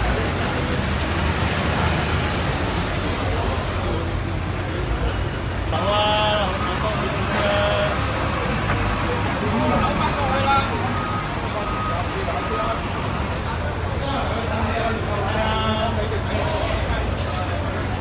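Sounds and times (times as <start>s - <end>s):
people talking: 0.0s - 18.0s
vehicle engines rumbling: 0.0s - 18.0s.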